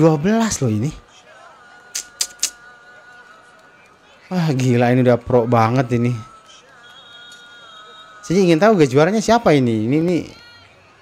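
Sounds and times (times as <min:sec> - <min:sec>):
sharp clicks: 0:02.0 - 0:02.6.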